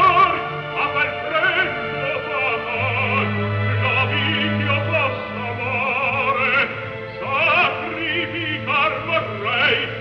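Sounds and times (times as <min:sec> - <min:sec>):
operatic voice singing: 0:00.0 - 0:10.0
orchestral accompaniment: 0:00.0 - 0:10.0.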